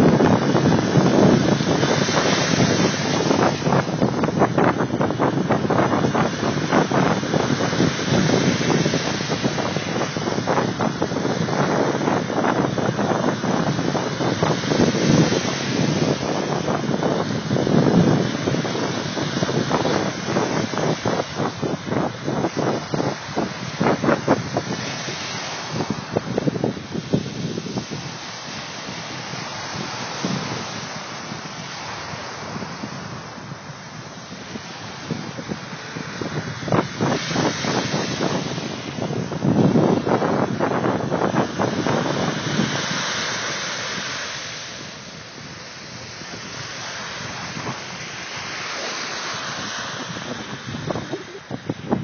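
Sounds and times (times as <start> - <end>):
waves washing onto a beach: 0.0 - 52.0
wind buffeting microphone: 0.0 - 52.0.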